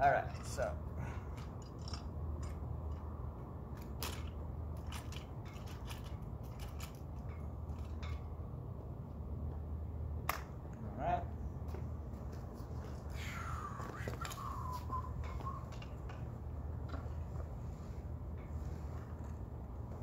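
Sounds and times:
steady low hum: 0.0 - 20.0
metal tripod clicks and rattles: 1.3 - 8.3.

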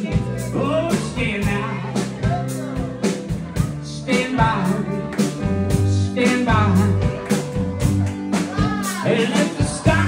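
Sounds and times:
bass line: 0.0 - 10.0
live band playing soul: 0.0 - 10.0
person singing: 0.0 - 10.0.

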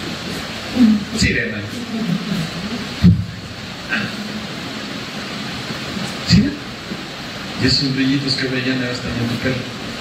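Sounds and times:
room background hiss: 0.0 - 10.0.

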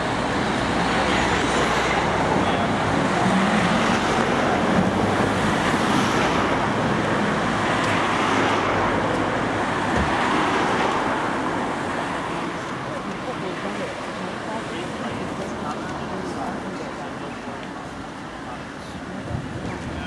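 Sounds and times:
road traffic passing: 0.0 - 20.0.

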